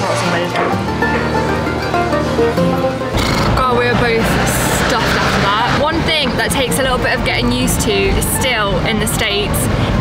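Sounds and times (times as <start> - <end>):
road and engine rumble: 0.0 - 10.0
woman talking: 3.5 - 9.7.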